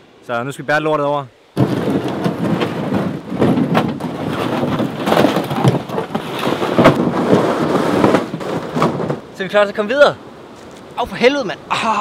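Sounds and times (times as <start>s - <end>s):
canoe scraping over grass: 1.6s - 9.7s.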